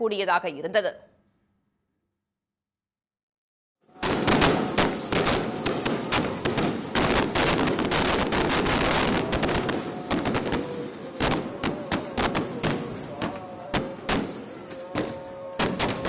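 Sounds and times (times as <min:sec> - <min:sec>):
fireworks crackling and banging: 0:03.9 - 0:16.0.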